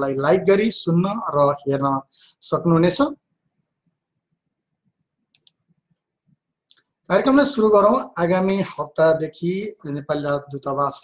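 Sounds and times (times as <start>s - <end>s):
faint quick clicks: 5.3s - 5.7s.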